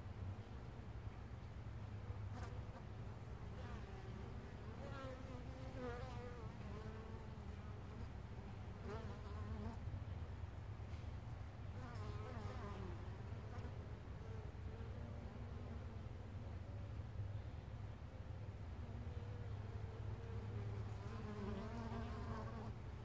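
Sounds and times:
steady low hum: 0.0 - 23.0
bees buzzing past: 19.6 - 23.0.

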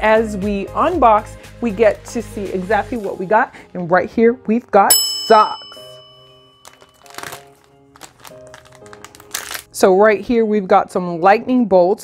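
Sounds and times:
soft background music: 0.0 - 12.0
chime: 4.9 - 7.4
plastic packaging crinkling: 6.6 - 9.7.

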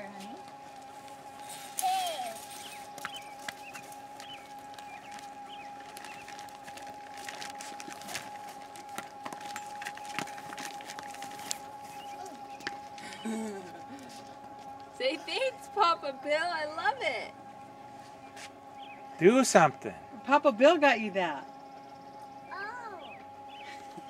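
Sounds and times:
faint high hum: 0.0 - 24.0
child laughing: 1.8 - 2.6, 13.1 - 13.8.

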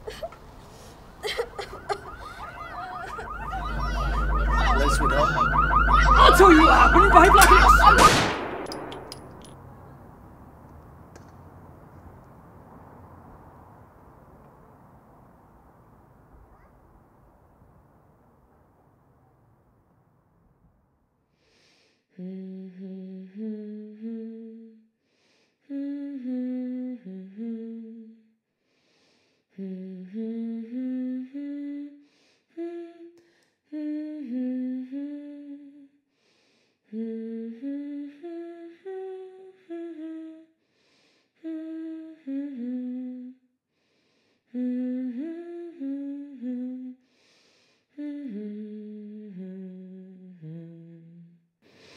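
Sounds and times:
person humming slow tune: 22.2 - 24.8, 25.7 - 28.1, 29.6 - 31.9, 41.4 - 43.4, 44.6 - 47.0, 48.0 - 51.4.

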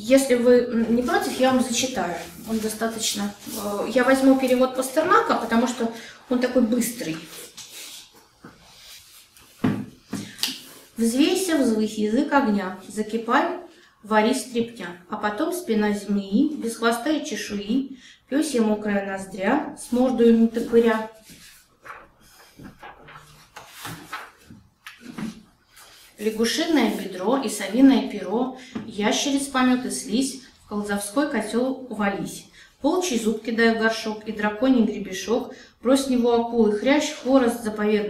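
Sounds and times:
paper pages rustling: 1.2 - 5.6, 6.8 - 9.7, 20.3 - 27.0
book handling knocks: 9.6 - 10.4.

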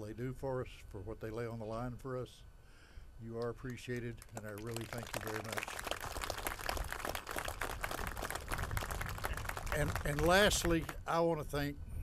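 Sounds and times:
audience applauding: 4.3 - 11.0.

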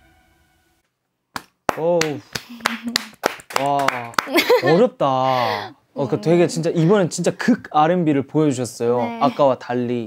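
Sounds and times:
sharp claps: 1.3 - 4.6
voice calling out: 9.0 - 9.5.

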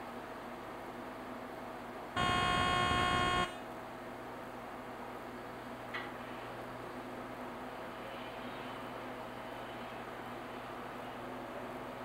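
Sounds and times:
electronic buzzer: 2.2 - 3.6.

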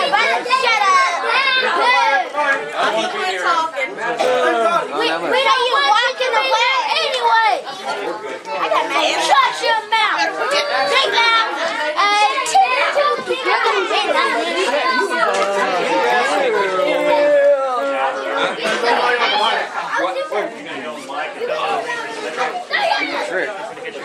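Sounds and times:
crowd chatter: 0.0 - 24.0.

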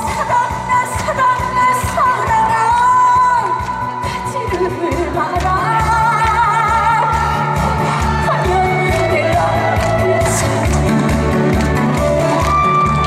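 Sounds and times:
woman singing into microphone: 0.0 - 13.0.

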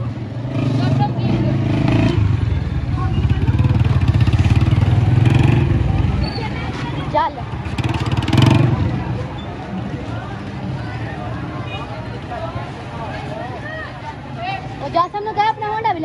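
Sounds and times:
motorcycle engine running hard: 0.0 - 9.3
onlookers' voices: 0.0 - 16.0.

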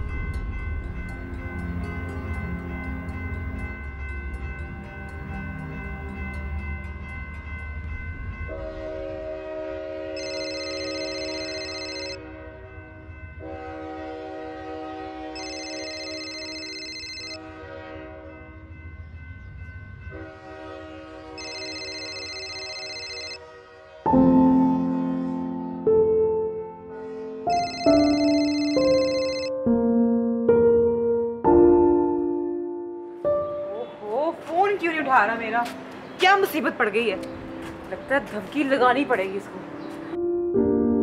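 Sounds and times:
background score music: 0.0 - 10.2, 23.4 - 41.0
mobile phone electronic ringtone: 10.2 - 12.2, 15.4 - 17.4, 21.4 - 23.4, 27.5 - 29.6.

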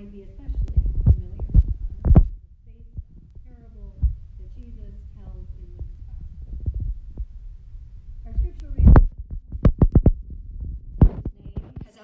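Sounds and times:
camera handling rumble: 8.4 - 12.0.

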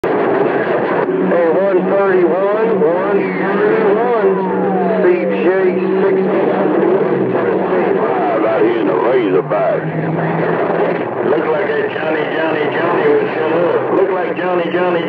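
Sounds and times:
heterodyne tones: 0.0 - 15.0
radio static hiss: 0.0 - 15.0
garbled radio voices: 0.1 - 15.0.

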